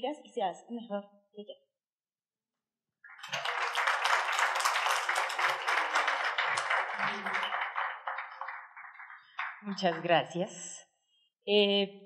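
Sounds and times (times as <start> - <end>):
small audience applauding: 3.0 - 10.4.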